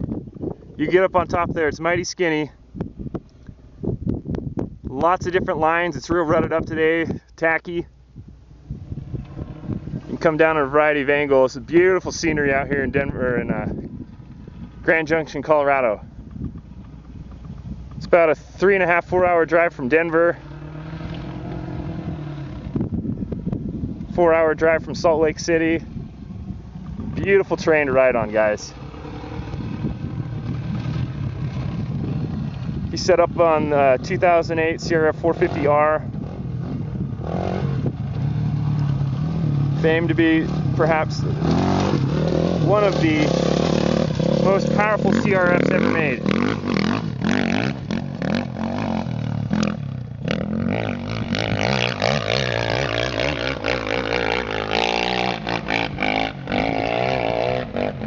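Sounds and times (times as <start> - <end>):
wind on microphone: 0.0 - 7.3, 8.1 - 19.7, 20.4 - 58.0
distant dirt bike engine: 8.6 - 58.0.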